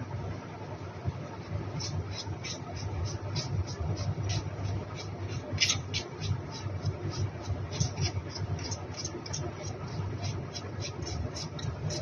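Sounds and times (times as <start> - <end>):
low background hum: 0.0 - 12.0
scratchy paintbrush strokes: 1.8 - 12.0.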